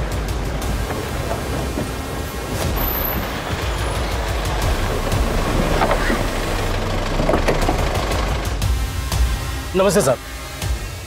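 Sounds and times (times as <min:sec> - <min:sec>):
car engine rumbling: 0:00.0 - 0:09.6.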